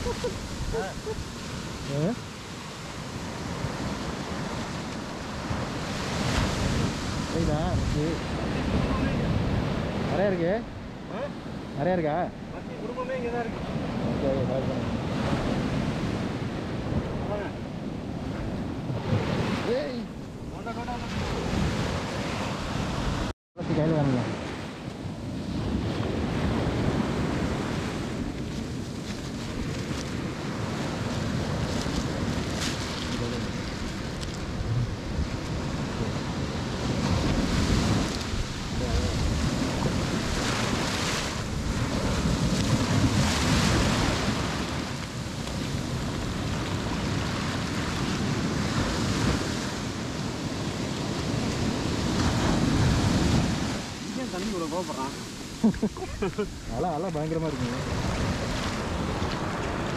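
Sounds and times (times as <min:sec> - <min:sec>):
wind buffeting microphone: 0:00.0 - 0:23.3, 0:24.5 - 0:59.9
sea surf washing: 0:00.0 - 0:59.9.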